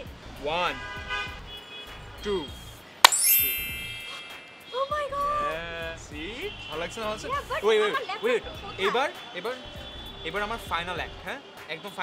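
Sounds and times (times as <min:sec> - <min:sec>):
sharp hit: 0:03.1 - 0:04.8
bright ringing chime with sparkle: 0:03.1 - 0:05.0.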